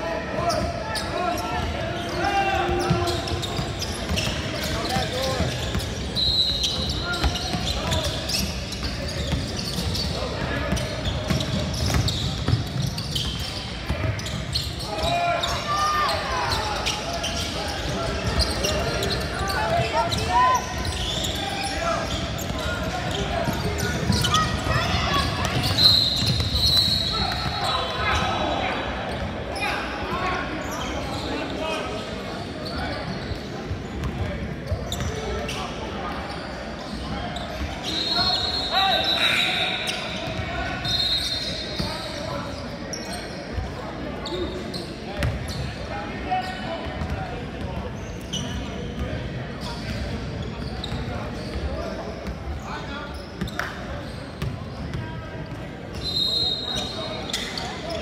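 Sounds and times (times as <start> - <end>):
voices echoing in a hall: 0.0 - 58.0
sneakers squeaking: 0.4 - 58.0
referee's whistle: 6.2 - 7.6, 25.6 - 28.2, 37.8 - 41.9, 55.9 - 57.5.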